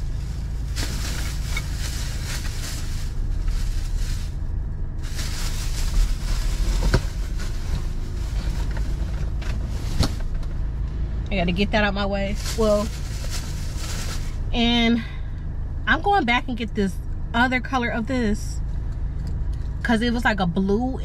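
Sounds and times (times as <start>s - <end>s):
plastic bag rustling: 0.0s - 10.4s, 12.3s - 14.5s
low rumble: 0.0s - 21.0s.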